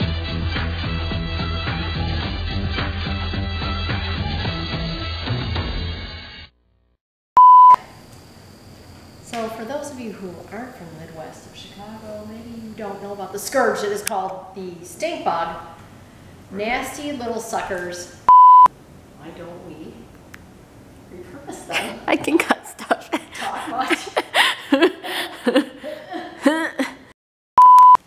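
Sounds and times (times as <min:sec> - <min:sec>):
censor bleep: 0:07.4 - 0:07.8, 0:18.3 - 0:18.7, 0:27.6 - 0:28.0
electronic beep: 0:07.4 - 0:07.8, 0:18.3 - 0:18.7, 0:27.6 - 0:28.0.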